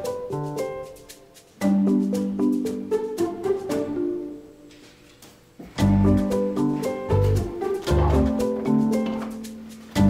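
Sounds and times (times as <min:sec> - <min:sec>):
film-score music: 0:05.7 - 0:10.0.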